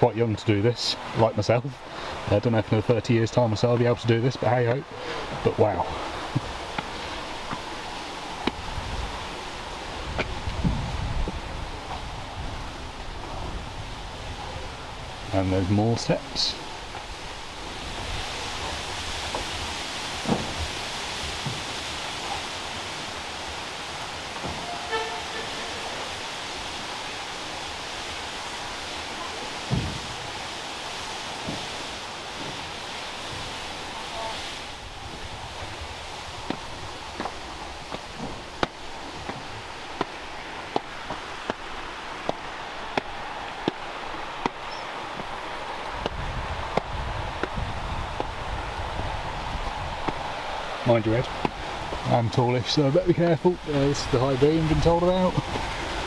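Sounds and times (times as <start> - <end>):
steady rushing noise: 0.0 - 56.0
footsteps on stone stairs: 4.7 - 9.3, 35.1 - 48.4.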